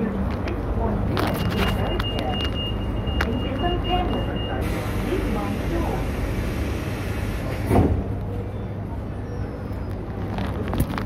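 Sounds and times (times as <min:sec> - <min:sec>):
faint voices: 0:00.0 - 0:11.0
rail car rumble: 0:00.0 - 0:11.0.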